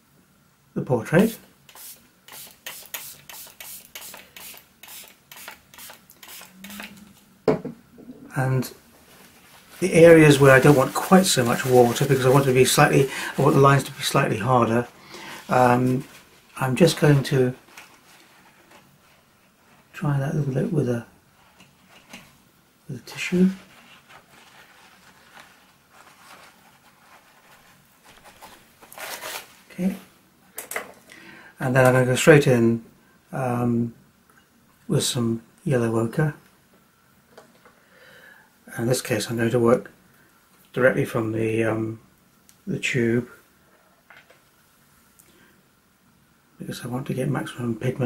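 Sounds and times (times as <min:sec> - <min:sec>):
spray bottle hissing puffs: 0:01.7 - 0:07.0
paper tissue rustling on paper: 0:08.9 - 0:20.4, 0:23.1 - 0:30.1.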